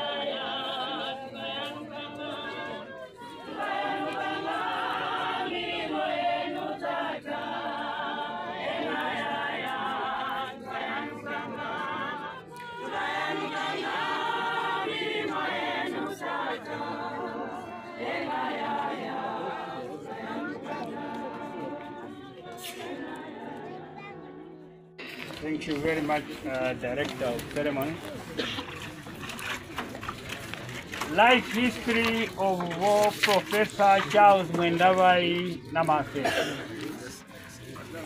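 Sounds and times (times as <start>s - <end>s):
crowd singing unaccompanied: 0.0s - 38.0s.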